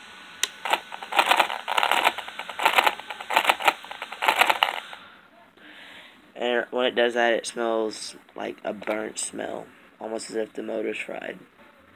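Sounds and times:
electric motor clicking and stuttering: 0:00.4 - 0:05.0.

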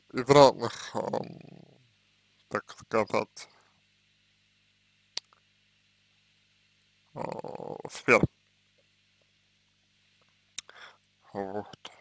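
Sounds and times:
man speaking: 0:00.1 - 0:01.8, 0:02.5 - 0:03.6, 0:07.2 - 0:08.3, 0:11.3 - 0:12.0
man's creaky hesitation sound: 0:07.2 - 0:08.3.

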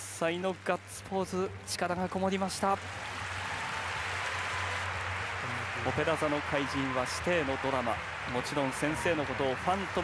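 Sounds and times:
audience applauding: 0:00.2 - 0:10.0.

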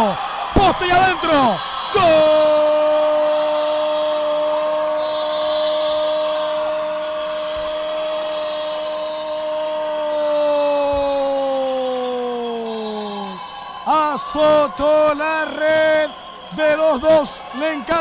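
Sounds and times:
man shouting goal: 0:00.0 - 0:18.0.

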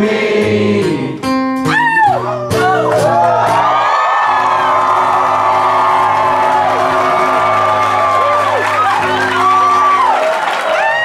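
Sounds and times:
crowd cheering and whooping: 0:01.7 - 0:11.0.

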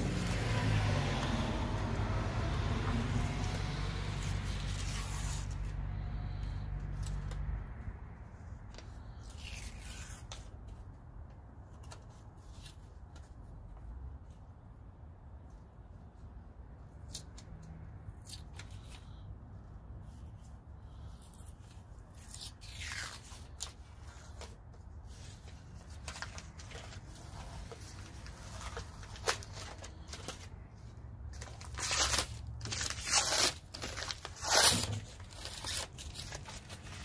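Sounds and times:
paper backing being peeled: 0:03.2 - 0:07.6, 0:08.8 - 0:13.5, 0:20.0 - 0:37.0.

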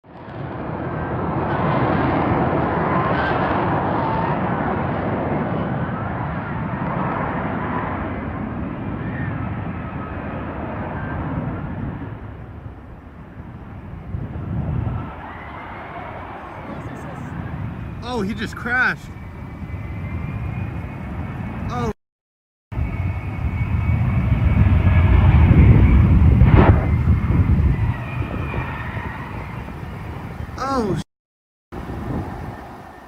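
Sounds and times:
jet engine roar: 0:00.1 - 0:22.0, 0:22.7 - 0:31.0, 0:31.8 - 0:33.0.

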